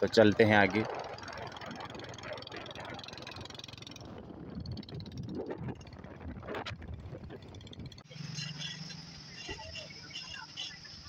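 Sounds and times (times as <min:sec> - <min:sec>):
motorbike engine: 0:00.0 - 0:11.0
road noise: 0:00.0 - 0:11.0
wind: 0:00.0 - 0:11.0.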